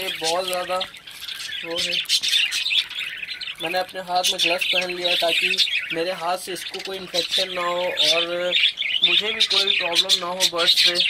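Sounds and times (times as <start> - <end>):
budgerigars chattering: 0.0 - 11.0.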